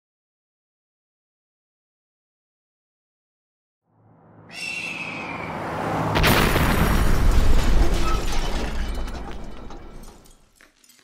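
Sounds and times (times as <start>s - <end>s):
hawk screeching: 4.5s - 5.6s.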